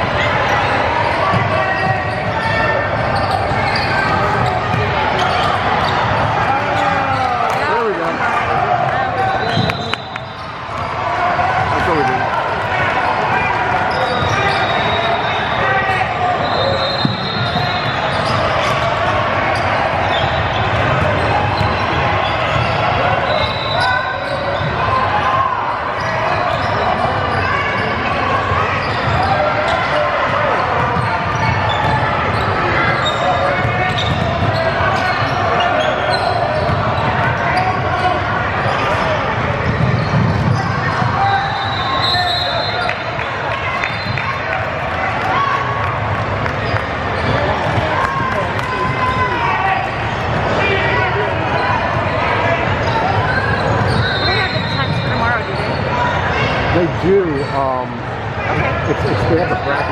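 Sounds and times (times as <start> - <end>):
chatter of people: 0.0 - 59.9
sneaker squeaks: 0.2 - 44.6, 46.4 - 57.7, 58.4 - 59.9
basketball bouncing on wooden court: 30.8 - 35.2.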